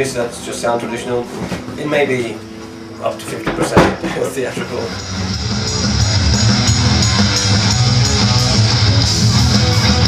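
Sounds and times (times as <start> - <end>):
heavy metal band playing: 3.8 - 10.0.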